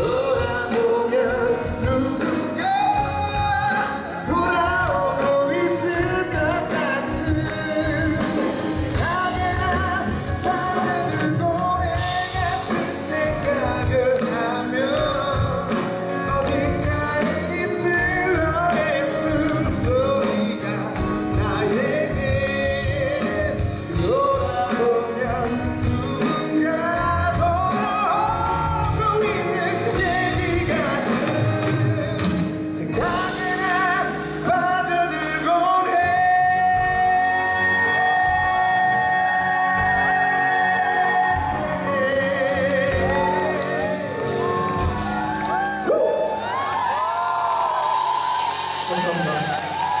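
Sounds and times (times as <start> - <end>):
man singing into a microphone: 0.0 - 45.0
band accompaniment: 0.0 - 50.0
audience whooping and screaming: 40.8 - 50.0.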